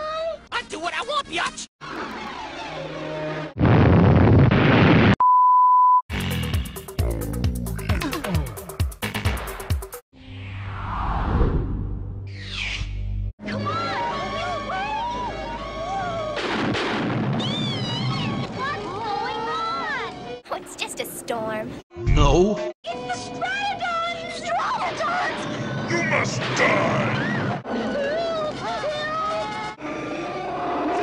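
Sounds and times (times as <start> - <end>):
loud crash burst: 3.6 - 5.2.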